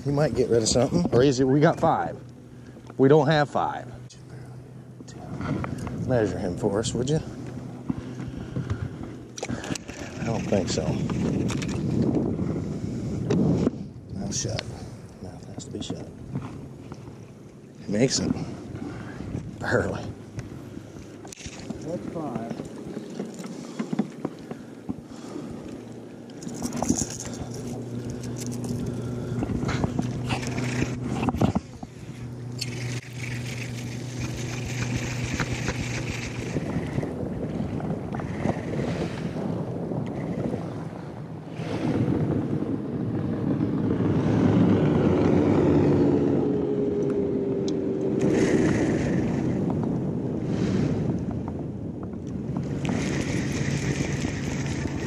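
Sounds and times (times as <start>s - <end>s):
electric trolling motor humming: 0.0s - 55.0s
wind noise on microphone: 5.2s - 16.5s, 26.4s - 55.0s.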